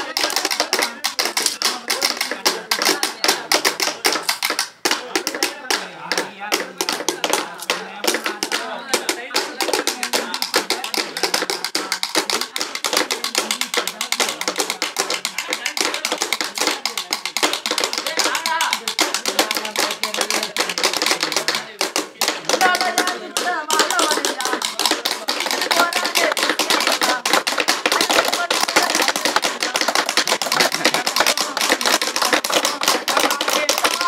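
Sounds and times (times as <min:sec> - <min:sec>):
sticks beating on bamboo: 0:00.0 - 0:34.0
men singing: 0:04.9 - 0:12.2, 0:17.9 - 0:34.0.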